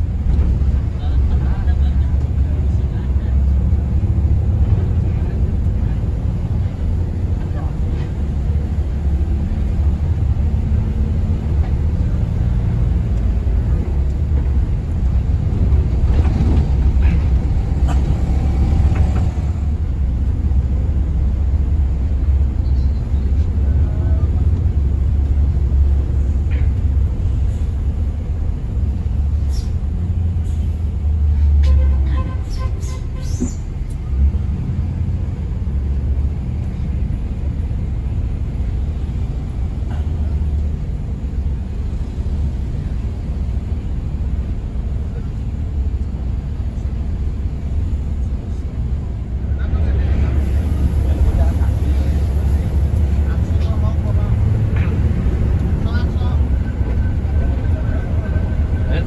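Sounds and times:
coach engine and road rumble: 0.0s - 59.0s.

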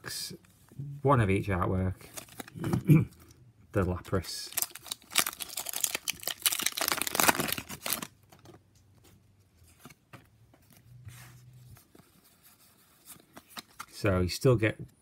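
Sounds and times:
cards rustling and clicking: 2.0s - 2.6s, 4.0s - 14.1s
foil wrapper tearing: 4.5s - 8.1s.

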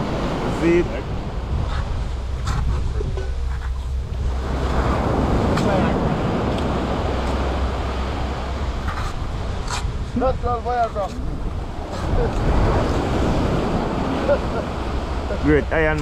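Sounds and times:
surf washing onto shore: 0.0s - 16.0s
wind rumbling on microphone: 0.0s - 16.0s.

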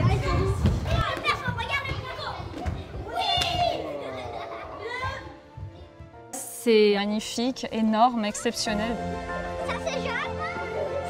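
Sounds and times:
children calling and chattering: 0.0s - 6.0s, 8.2s - 11.0s.

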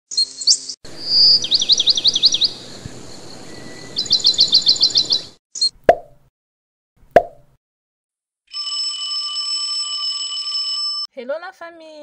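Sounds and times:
songbird singing: 0.1s - 5.8s.

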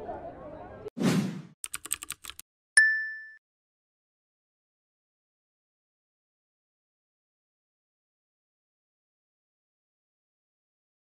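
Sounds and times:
keyboard-like typing clicks: 1.6s - 2.4s
bright ding: 2.8s - 3.4s.

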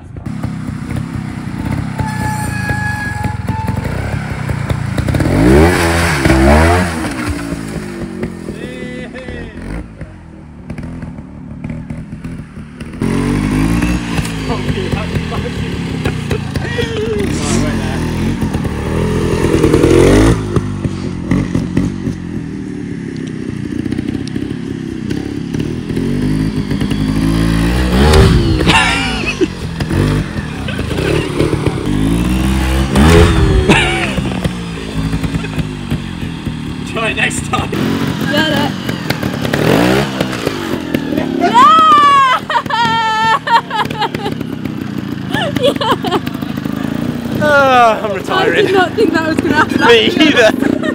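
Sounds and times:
motorcycle revving: 0.0s - 50.9s.

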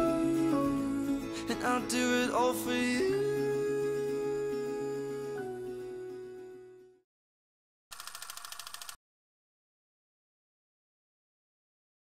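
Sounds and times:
film projector clatter: 8.0s - 9.0s.

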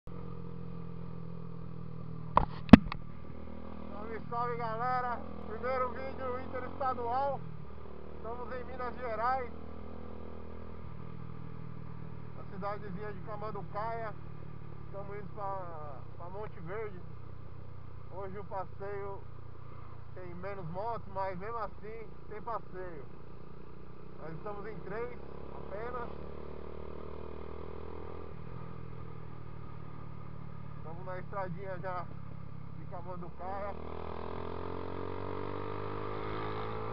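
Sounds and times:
motorcycle engine running: 0.1s - 36.9s
sharp knocks: 2.4s - 3.0s.

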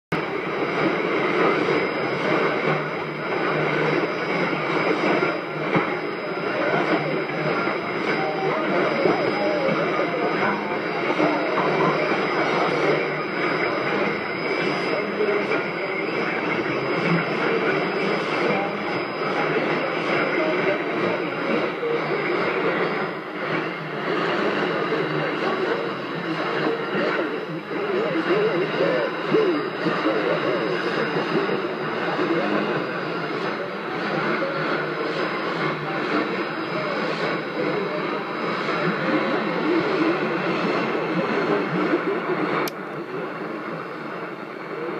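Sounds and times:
radio static hiss: 0.1s - 44.9s
voice over radio: 0.2s - 44.9s.

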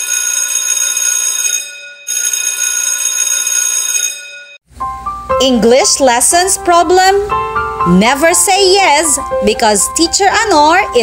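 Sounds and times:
alarm bell ringing: 0.0s - 4.6s.

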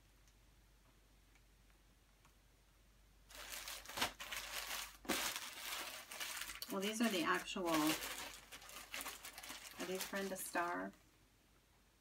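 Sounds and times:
plastic bag crinkling: 3.3s - 11.0s.

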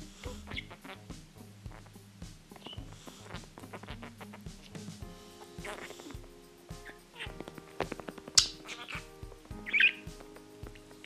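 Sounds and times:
background music with steady beat: 0.0s - 11.0s
budgerigar chirps: 0.1s - 1.1s, 2.6s - 4.7s, 5.4s - 7.4s, 8.4s - 11.0s.

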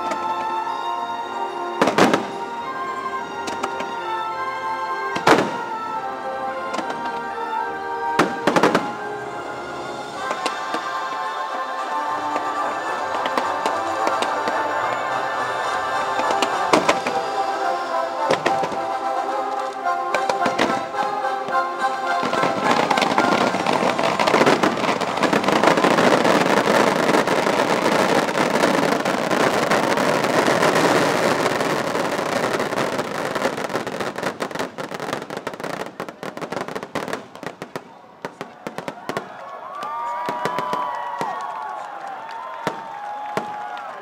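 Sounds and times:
crowd cheering and whistling: 0.0s - 36.7s, 37.9s - 44.0s
fireworks bursting and crackling: 1.5s - 4.2s, 5.0s - 5.9s, 8.1s - 41.8s, 42.4s - 44.0s.

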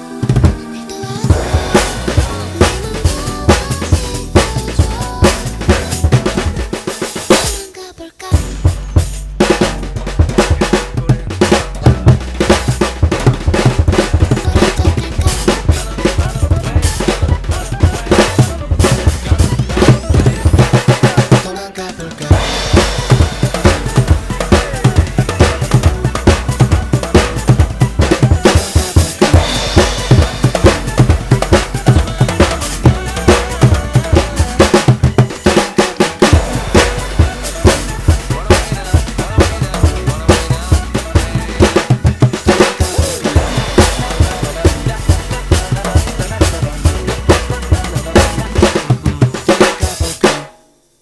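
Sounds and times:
backing music: 0.0s - 51.0s
jazz drum kit playing: 0.0s - 51.0s.

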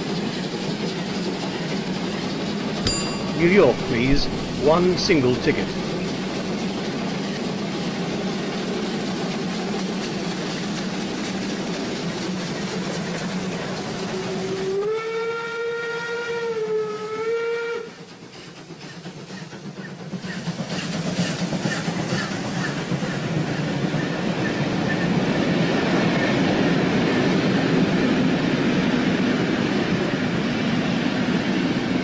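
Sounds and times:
steam locomotive hiss and rumble: 17.9s - 24.6s.

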